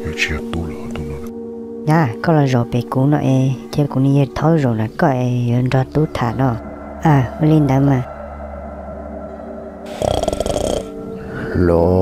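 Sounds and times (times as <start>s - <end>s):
low hum: 0.0s - 11.5s
ambient drone of held tones: 0.0s - 12.0s.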